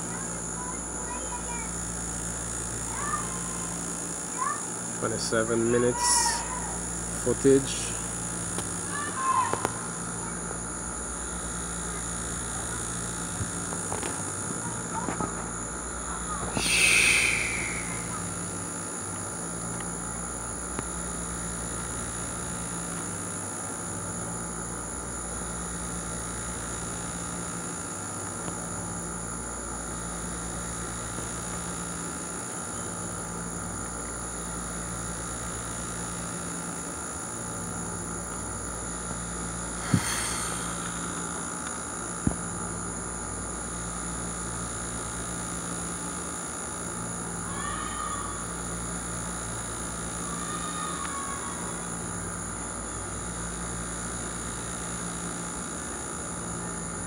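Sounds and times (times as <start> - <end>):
steady hum: 6.0 - 22.0, 38.0 - 45.5
high whine: 16.4 - 18.8, 39.8 - 42.2.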